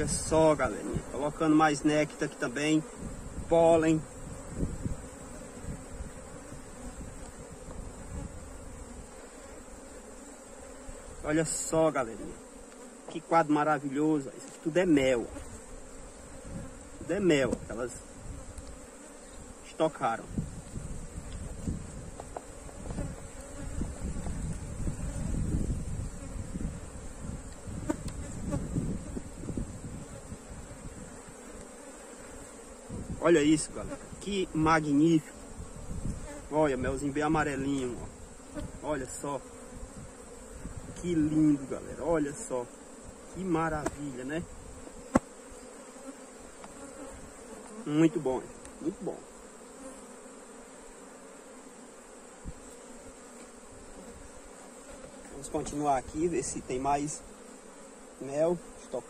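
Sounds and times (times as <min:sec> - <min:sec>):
bees buzzing: 0:00.0 - 0:59.0.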